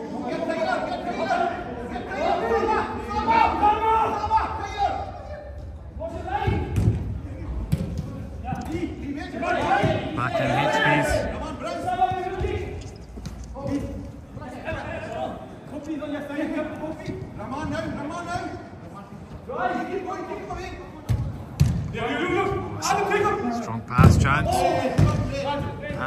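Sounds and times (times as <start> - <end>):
players shouting: 9.6 - 11.4.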